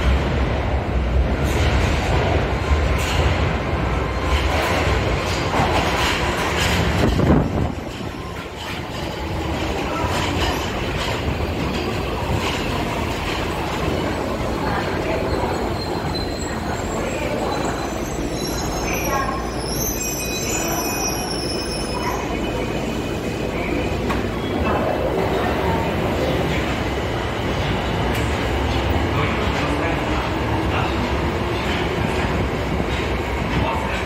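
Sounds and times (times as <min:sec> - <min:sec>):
subway train wheels rumbling: 0:00.0 - 0:34.0
high brake squeal: 0:15.2 - 0:22.4.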